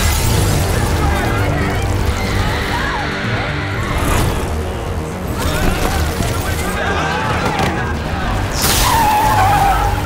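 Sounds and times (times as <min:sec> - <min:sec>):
car tyres screeching: 0:06.4 - 0:10.0.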